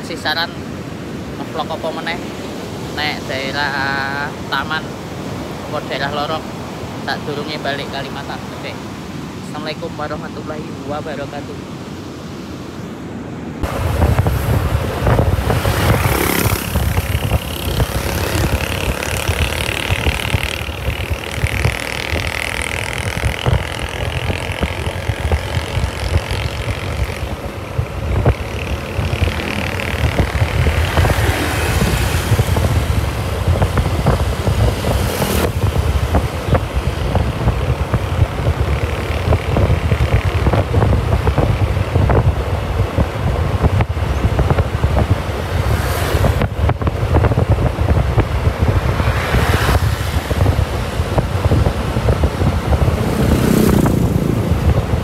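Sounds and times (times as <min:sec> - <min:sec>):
road noise: 0:00.0 - 0:55.0
wind buffeting microphone: 0:11.3 - 0:55.0
scooter engine: 0:13.6 - 0:55.0.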